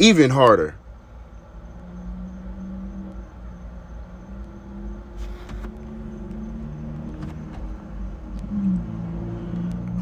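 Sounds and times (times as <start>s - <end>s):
low mechanical hum: 0.0s - 10.0s.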